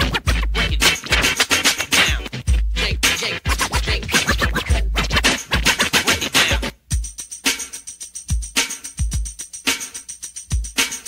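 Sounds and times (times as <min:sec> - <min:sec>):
record scratching: 0:00.0 - 0:06.7
hip hop beat: 0:00.0 - 0:11.0.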